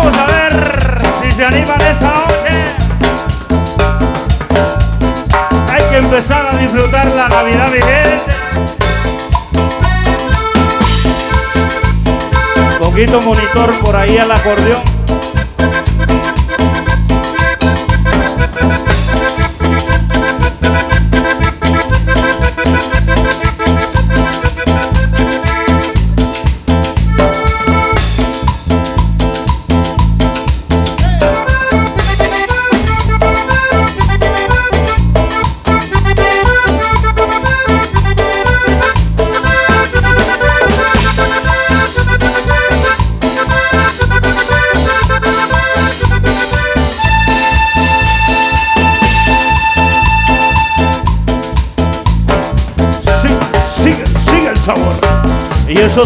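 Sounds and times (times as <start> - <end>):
button accordion melody: 0.0 - 56.0
live band dance beat: 0.0 - 56.0.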